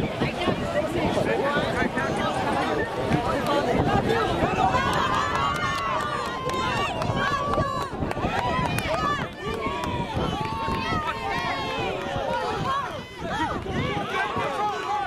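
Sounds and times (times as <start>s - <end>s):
many voices shouting: 3.3s - 15.0s.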